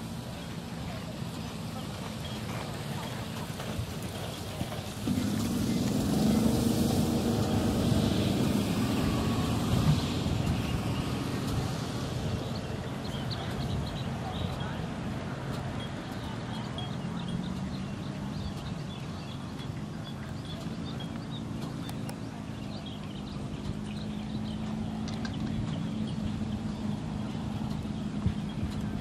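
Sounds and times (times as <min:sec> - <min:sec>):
outdoor background noise: 0:00.0 - 0:29.0
vehicle engine running: 0:00.0 - 0:29.0.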